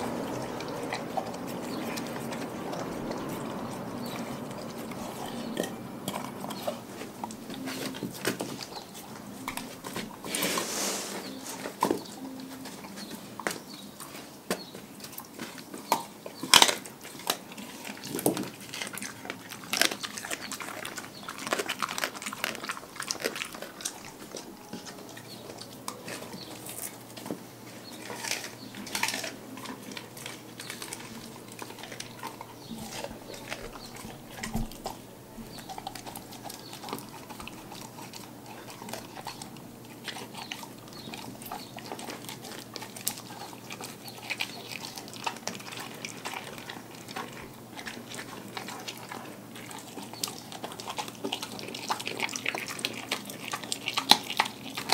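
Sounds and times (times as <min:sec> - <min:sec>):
dog chewing raw fish: 0:00.0 - 0:54.9.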